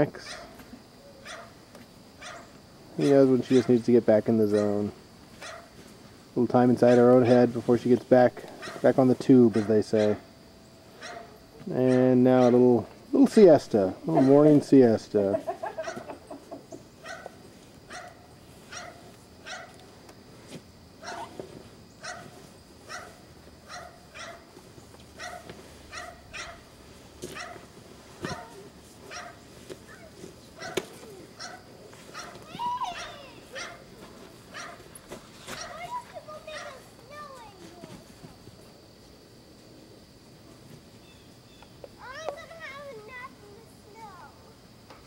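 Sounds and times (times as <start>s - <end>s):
small dog barking: 0.3s - 0.6s, 1.2s - 1.5s, 2.2s - 2.5s, 5.4s - 5.7s, 11.0s - 12.6s, 14.1s - 14.4s, 15.8s - 16.2s, 17.0s - 19.8s, 21.0s - 21.3s, 22.0s - 24.4s, 25.2s - 26.7s, 27.4s - 27.6s, 28.2s - 29.4s, 30.6s - 33.8s, 34.5s - 34.8s.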